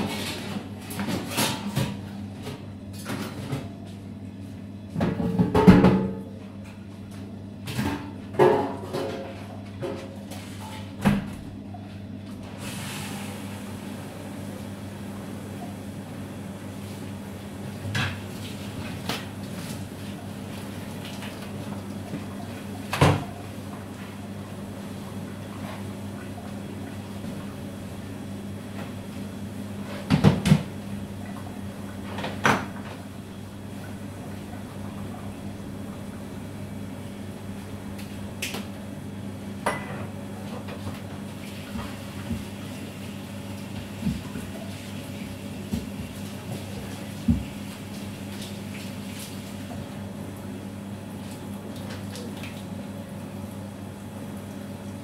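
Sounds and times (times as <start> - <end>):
steady low hum: 13.2 - 41.1.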